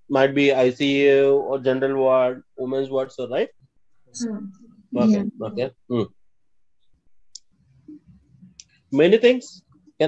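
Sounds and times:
faint murmur: 0.1 - 3.5, 4.2 - 6.1, 9.0 - 9.6
person saying hmm: 0.2 - 3.4, 5.0 - 6.0.

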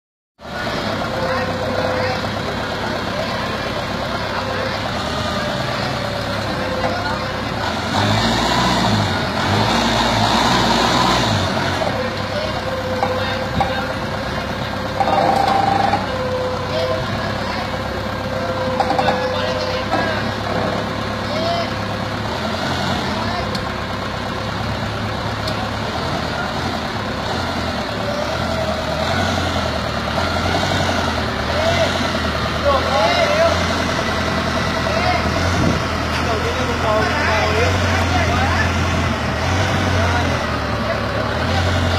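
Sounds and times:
people talking: 0.4 - 7.9, 11.4 - 29.0, 31.0 - 41.9
forklift engine running: 0.4 - 41.9.

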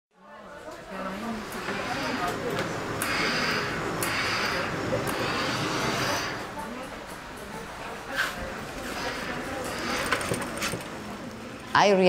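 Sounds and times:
steam iron hissing: 1.3 - 6.6, 8.8 - 10.8.

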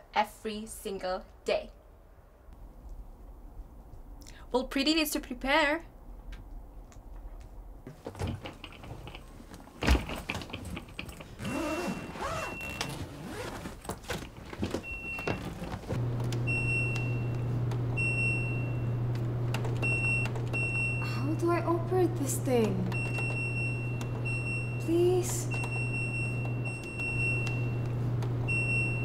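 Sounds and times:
low machine hum: 16.0 - 29.0.

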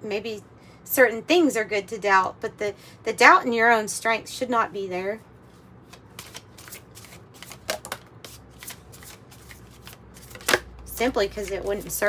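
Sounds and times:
cards being shuffled: 5.5 - 10.7.

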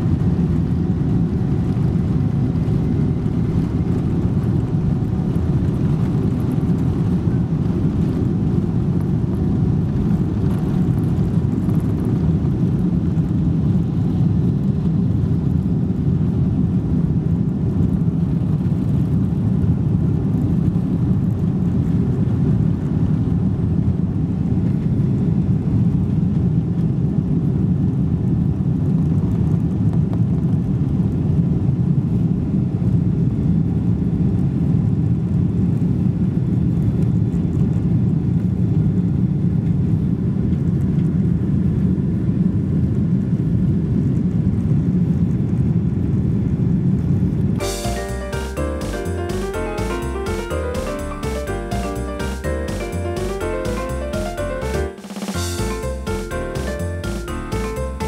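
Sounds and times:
airplane cabin engine rumble: 0.0 - 48.0.

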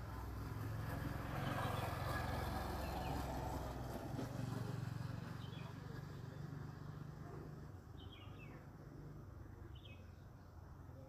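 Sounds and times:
outdoor background noise: 0.0 - 11.0
bird chirp: 8.0 - 8.7, 9.6 - 11.0.

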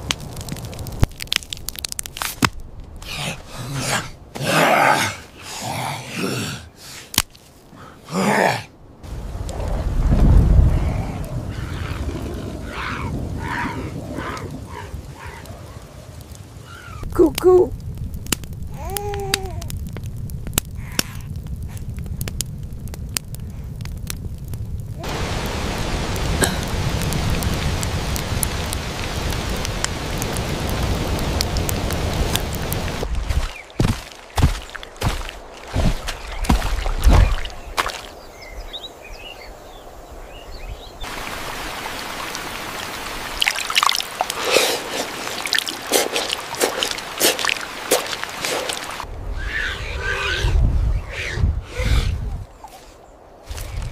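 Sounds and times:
steady rain: 0.0 - 50.7
crackling campfire: 0.0 - 53.9.

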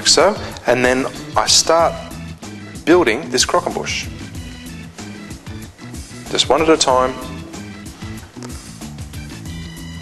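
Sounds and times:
instrumental music with bass line: 0.0 - 10.0.

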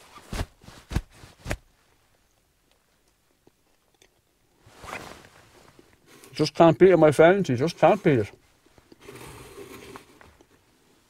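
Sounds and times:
person chewing: 2.7 - 4.6.

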